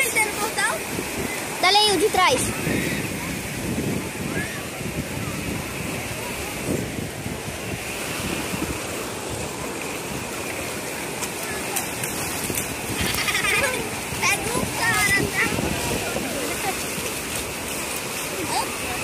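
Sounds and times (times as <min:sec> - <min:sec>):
ocean surf breaking: 0:00.0 - 0:19.0.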